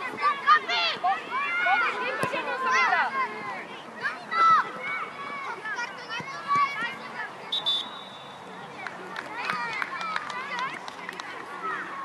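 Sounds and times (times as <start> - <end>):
children shouting: 0.0 - 7.6
short whistle blast: 7.5 - 8.4.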